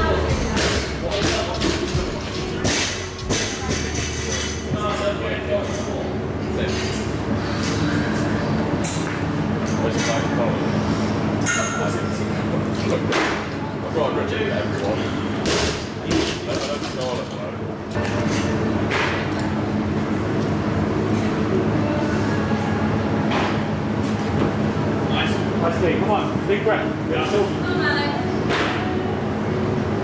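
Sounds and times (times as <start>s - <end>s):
gym hum: 0.0s - 14.0s.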